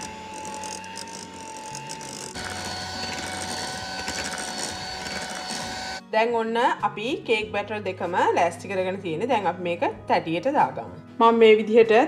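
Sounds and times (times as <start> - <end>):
electric hand mixer whining: 0.0 - 6.0.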